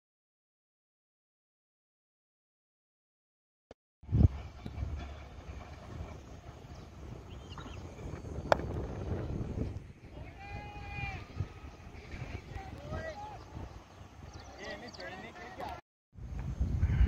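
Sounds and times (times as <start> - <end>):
wind rumble on microphone: 4.0 - 14.7, 16.2 - 17.0
cricket bat hitting ball: 8.4 - 8.7.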